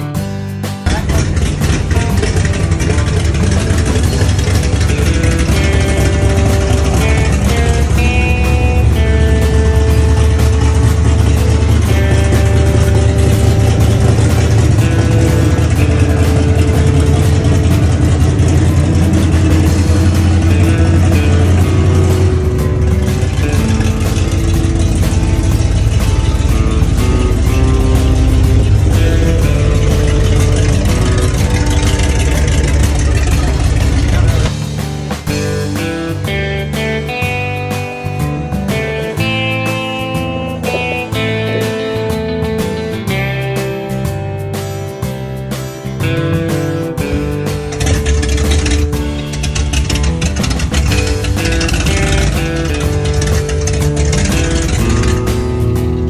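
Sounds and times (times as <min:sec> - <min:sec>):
engine running with low rumble: 0:00.0 - 0:56.0
melodic music: 0:00.0 - 0:56.0.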